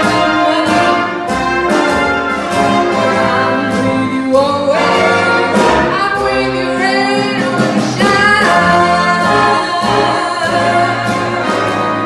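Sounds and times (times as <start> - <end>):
woman singing: 0.0 - 1.2, 3.0 - 12.0
jazz big band playing: 0.0 - 12.0.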